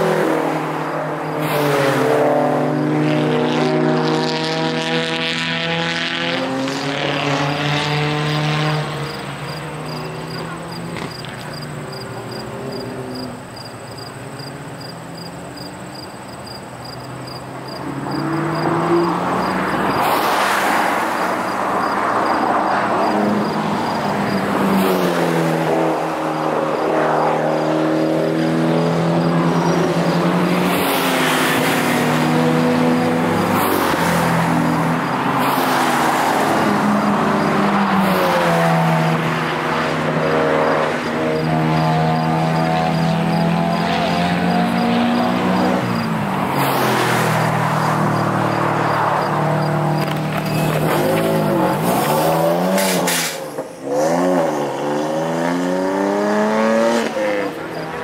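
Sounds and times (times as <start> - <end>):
race car engines revving: 0.0 - 58.0
tyre and road noise: 0.0 - 58.0.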